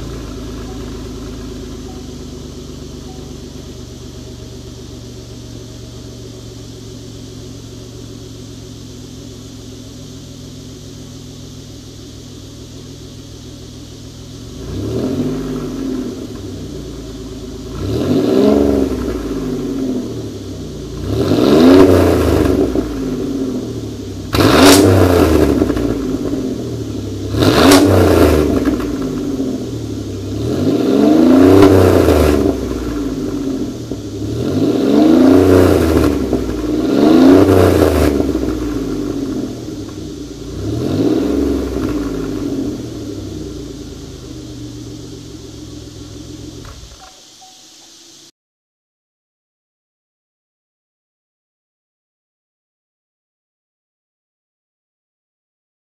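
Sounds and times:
car engine idling and revving: 0:00.0 - 0:48.3
sharp exhaust crack: 0:00.0 - 0:48.3.

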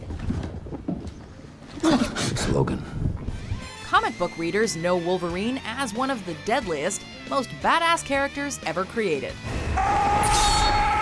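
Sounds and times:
film score music: 0:03.3 - 0:11.0.

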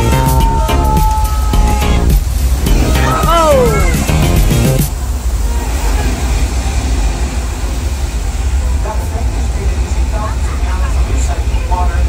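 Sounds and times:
torrent of water rushing: 0:00.0 - 0:12.0.

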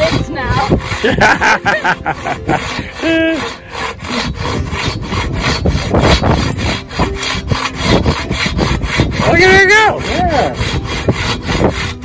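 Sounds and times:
pull saw cutting wood: 0:00.0 - 0:12.0.

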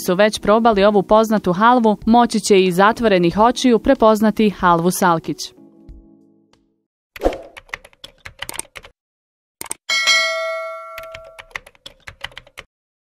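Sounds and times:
keyboard typing clicks: 0:07.2 - 0:08.9, 0:09.6 - 0:09.8, 0:10.9 - 0:12.7
bright bell ding: 0:09.9 - 0:11.5.

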